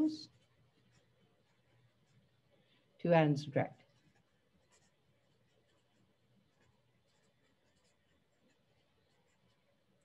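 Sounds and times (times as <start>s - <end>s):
marker writing on paper: 0.0s - 2.5s, 3.8s - 10.0s.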